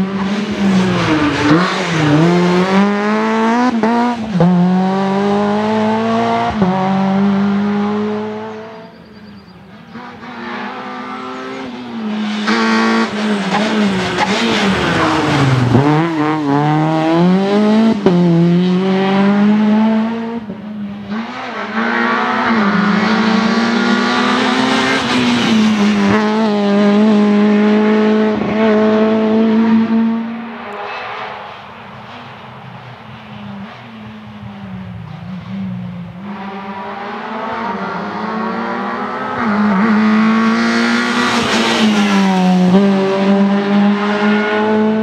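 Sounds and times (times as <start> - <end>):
rally car engine at high revs: 0.0 - 9.0, 9.7 - 32.2, 35.0 - 45.0.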